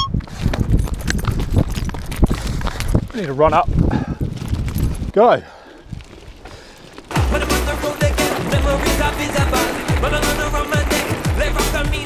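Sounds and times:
bike tyres on gravel: 0.1 - 12.0
electronic music with deep kick: 7.2 - 12.0.

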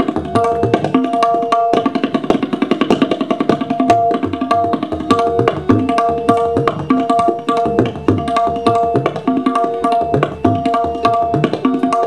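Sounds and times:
tabla fast strokes: 0.0 - 12.0.

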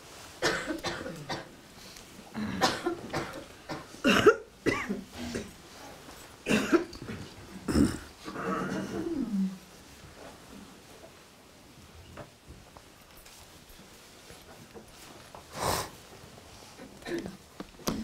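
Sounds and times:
people coughing: 0.4 - 1.6, 2.3 - 5.6, 6.4 - 9.4, 16.8 - 17.4.

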